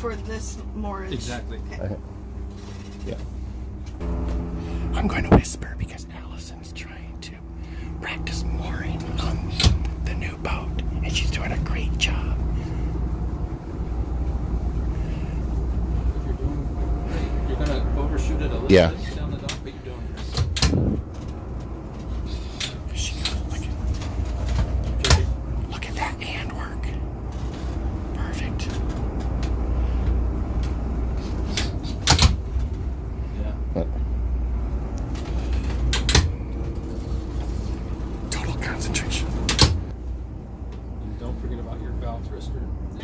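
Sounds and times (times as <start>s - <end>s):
boat engines idling: 0.0s - 43.0s.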